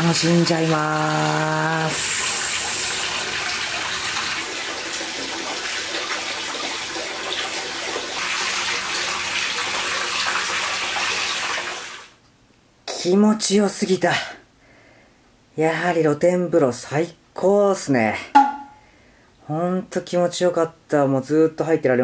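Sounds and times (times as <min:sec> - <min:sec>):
water pouring into rock bath: 0:00.0 - 0:12.1.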